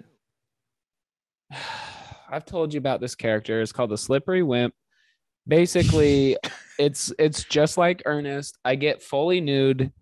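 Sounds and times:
man sighing into microphone: 0:01.5 - 0:02.3.

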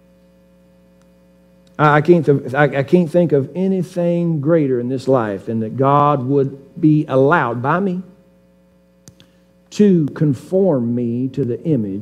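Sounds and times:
low electrical hum: 0:00.0 - 0:12.0
man speaking: 0:01.8 - 0:08.2, 0:09.7 - 0:12.0.

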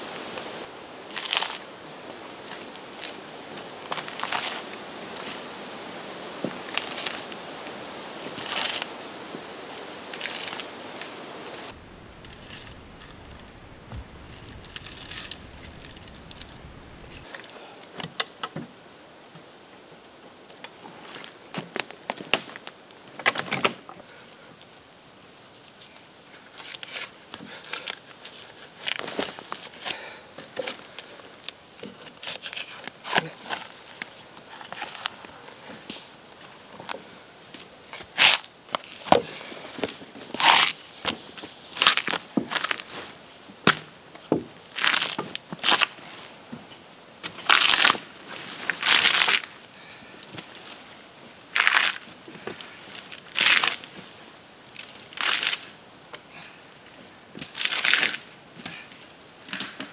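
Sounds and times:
bark tearing off log: 0:38.0 - 0:40.8.

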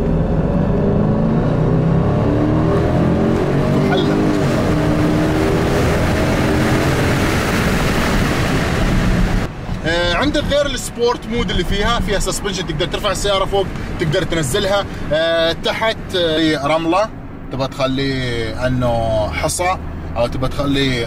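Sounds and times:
car engine accelerating from inside: 0:00.0 - 0:09.5.

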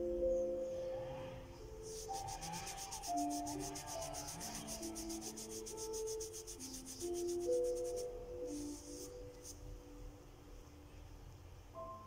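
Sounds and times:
soft music with long notes: 0:00.0 - 0:12.0
wipe rubbing on skin: 0:01.9 - 0:09.6.

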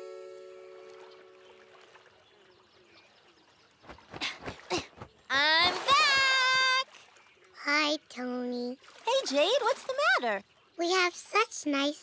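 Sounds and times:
held music chord: 0:00.0 - 0:01.6
wings swishing and water splashing: 0:00.6 - 0:10.8.

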